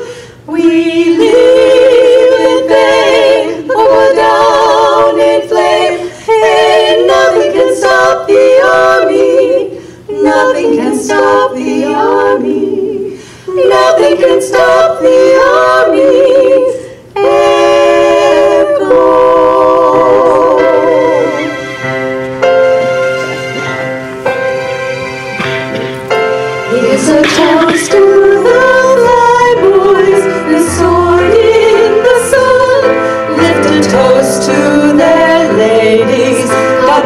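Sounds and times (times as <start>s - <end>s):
women singing a cappella: 0.0s - 21.6s, 26.7s - 37.0s.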